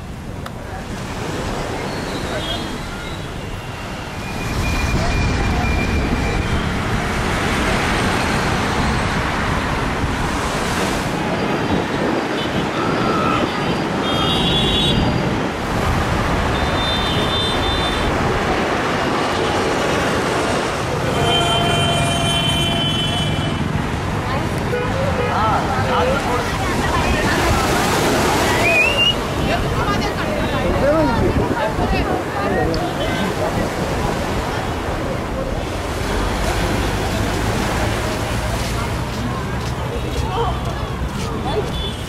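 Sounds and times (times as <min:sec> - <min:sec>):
car horns: 0:21.1 - 0:23.7.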